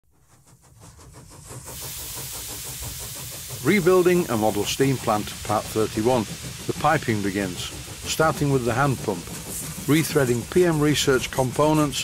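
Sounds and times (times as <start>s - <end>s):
steam engine chuffing: 0.1s - 12.0s
steam hissing: 0.1s - 12.0s.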